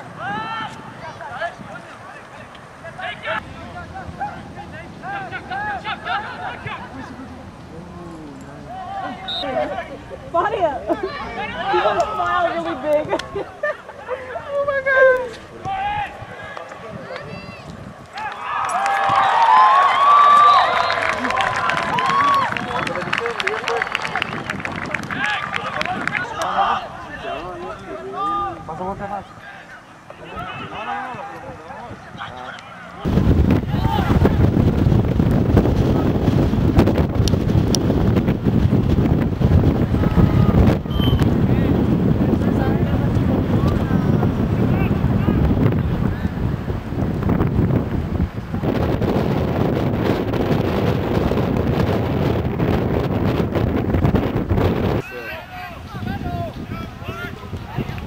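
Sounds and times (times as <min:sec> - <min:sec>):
wind buffeting microphone: 0:14.5 - 0:29.2, 0:30.3 - 0:58.0.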